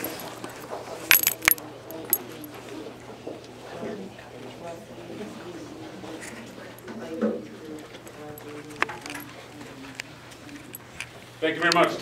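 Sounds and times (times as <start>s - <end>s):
metallic clicks and clinks: 1.1s - 2.5s.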